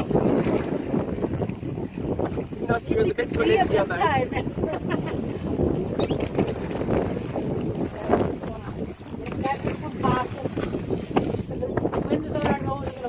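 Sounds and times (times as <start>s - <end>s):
open water wash: 0.0s - 13.0s
wind rumble on microphone: 0.0s - 13.0s.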